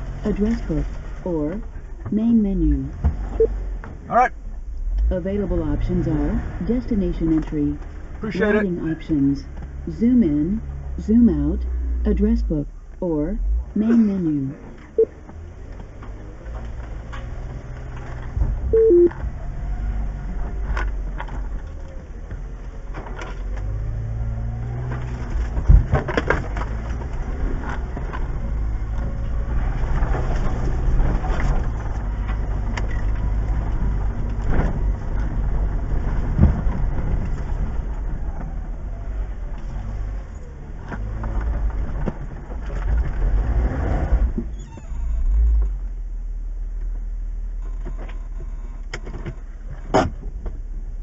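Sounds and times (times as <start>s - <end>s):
low engine rumble: 0.0s - 51.0s
knocks and rattles over bumps: 14.6s - 44.6s.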